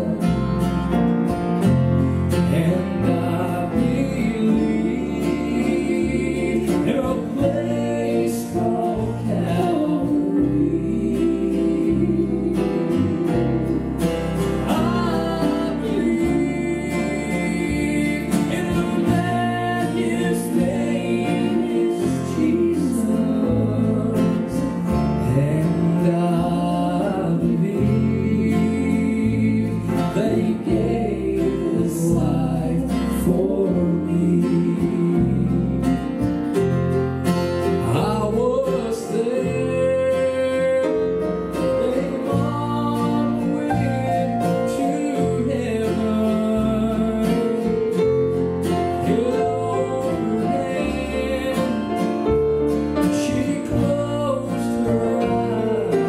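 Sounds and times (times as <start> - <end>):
man singing gospel song: 0.0 - 0.6, 2.1 - 13.7, 14.4 - 36.0, 37.8 - 56.0
bass: 0.0 - 56.0
strummed acoustic guitar: 0.0 - 56.0.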